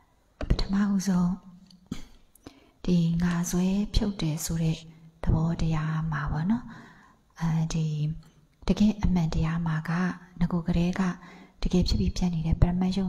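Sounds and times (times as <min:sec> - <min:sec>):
woman talking into a microphone: 0:02.9 - 0:06.6, 0:07.4 - 0:13.0.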